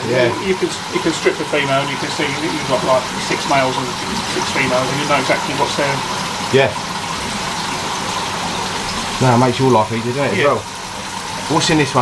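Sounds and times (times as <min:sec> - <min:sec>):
air bubbling in aquarium tanks: 0:00.0 - 0:12.0.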